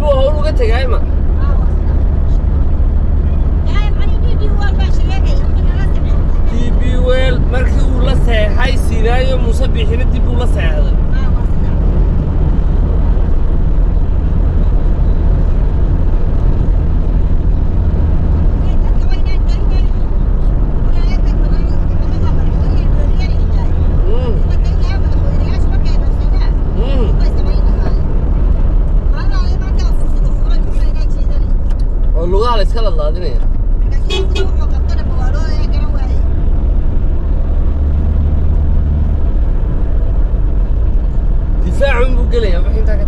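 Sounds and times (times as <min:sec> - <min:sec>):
car engine and tyres rumbling: 0:00.0 - 0:43.0.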